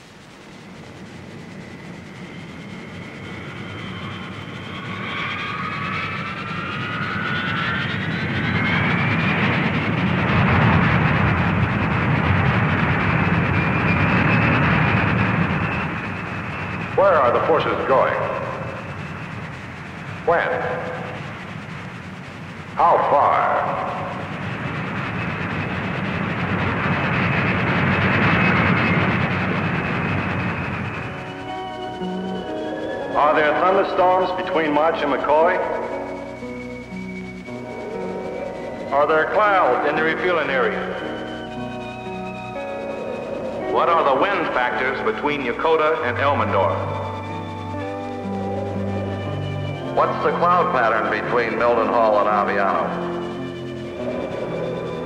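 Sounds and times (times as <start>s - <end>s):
jet engines running with whine: 0.0s - 55.0s.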